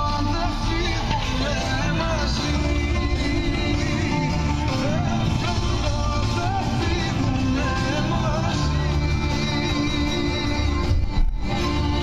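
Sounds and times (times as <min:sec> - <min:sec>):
song on car radio: 0:00.0 - 0:12.0.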